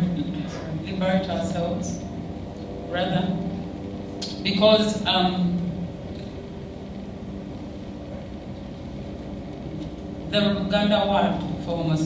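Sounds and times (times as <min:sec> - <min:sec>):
low rumble of hall room tone: 0:00.0 - 0:12.0.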